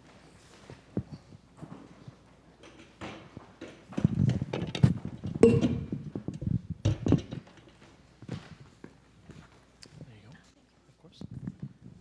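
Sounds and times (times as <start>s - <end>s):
knock with short ring: 5.4s - 6.0s.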